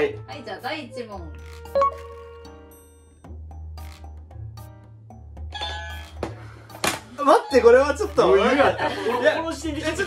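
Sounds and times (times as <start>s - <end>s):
light background music with bass: 0.0s - 10.0s.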